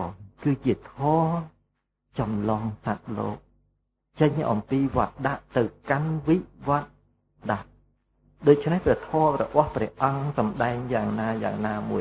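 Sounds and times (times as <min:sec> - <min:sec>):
man talking: 0:00.0 - 0:01.5, 0:02.2 - 0:03.4, 0:04.2 - 0:07.7, 0:08.4 - 0:12.0.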